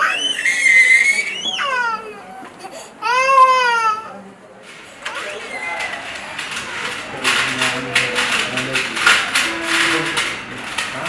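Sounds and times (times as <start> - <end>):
toddler crying: 0.0 - 4.2.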